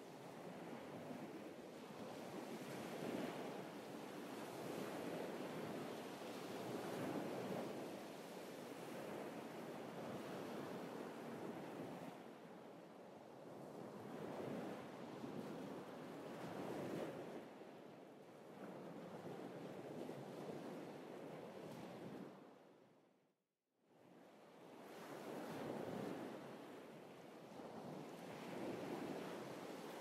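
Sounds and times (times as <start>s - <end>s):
ocean waves on shore: 0.1s - 22.5s, 24.0s - 30.0s.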